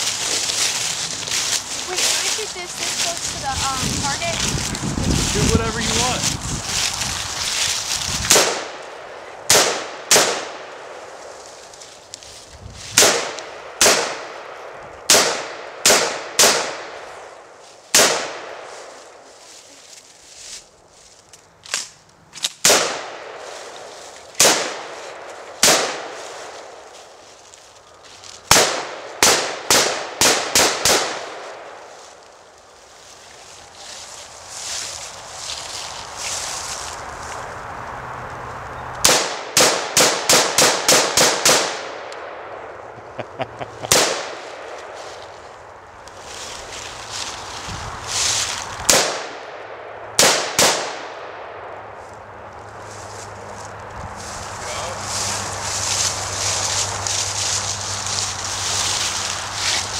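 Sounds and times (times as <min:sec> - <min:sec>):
rifle shots: 0:08.3 - 0:08.8, 0:09.5 - 0:10.7, 0:13.0 - 0:14.4, 0:15.1 - 0:17.0, 0:17.9 - 0:18.7, 0:22.6 - 0:23.4, 0:24.4 - 0:24.9, 0:25.6 - 0:26.2, 0:28.5 - 0:31.5, 0:39.0 - 0:42.5, 0:43.9 - 0:44.4, 0:48.9 - 0:49.4, 0:50.2 - 0:51.4.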